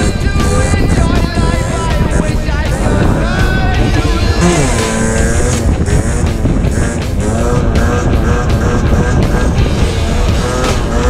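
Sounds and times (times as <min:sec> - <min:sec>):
background music: 0:00.0 - 0:11.0
moped engine running: 0:00.0 - 0:11.0.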